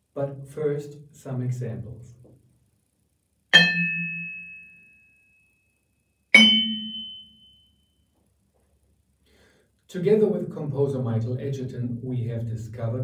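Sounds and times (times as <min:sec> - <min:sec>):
vibraphone bar strikes: 0:03.5 - 0:04.9, 0:06.3 - 0:07.6.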